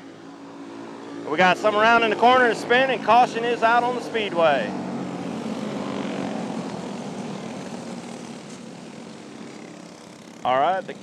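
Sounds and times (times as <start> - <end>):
kart engines running: 0.0 - 11.0.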